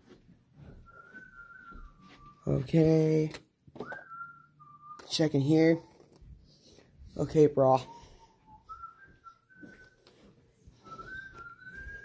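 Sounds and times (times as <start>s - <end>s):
person whistling long note: 0.8s - 3.0s, 3.8s - 12.0s.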